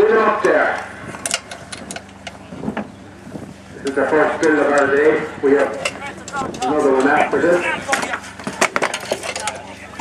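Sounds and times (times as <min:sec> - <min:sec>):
spanners and metal parts clinking: 0:07.9 - 0:09.9.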